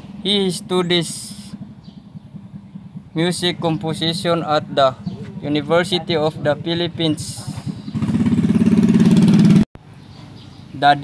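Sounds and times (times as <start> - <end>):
engine running with rapid pulse: 0.0 - 9.6.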